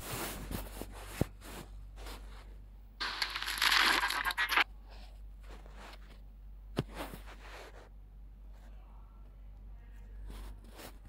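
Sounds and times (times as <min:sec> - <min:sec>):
crackles and clicks: 0:03.0 - 0:04.7.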